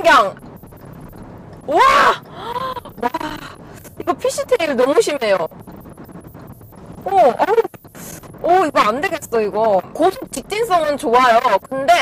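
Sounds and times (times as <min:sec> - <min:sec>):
woman exclaiming in surprise: 0:01.7 - 0:02.6.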